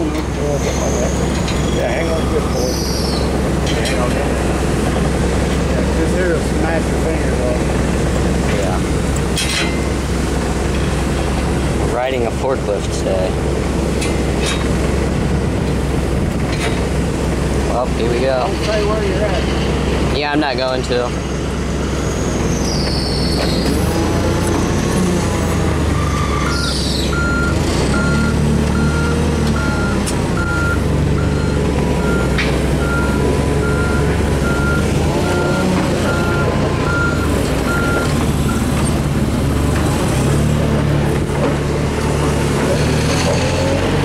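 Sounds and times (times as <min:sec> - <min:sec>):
forklift engine idling: 0:00.0 - 0:44.0
forklift back-up alarm beeping: 0:21.2 - 0:39.0.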